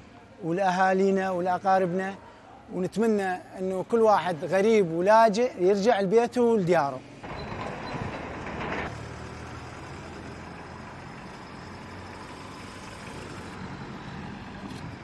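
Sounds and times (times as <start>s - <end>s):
outdoor traffic noise: 0.0s - 15.0s
vehicle engines humming: 7.0s - 15.0s.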